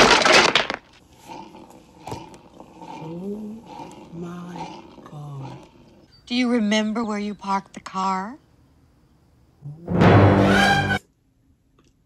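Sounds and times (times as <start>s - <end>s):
loud crash and breaking: 0.0s - 0.9s.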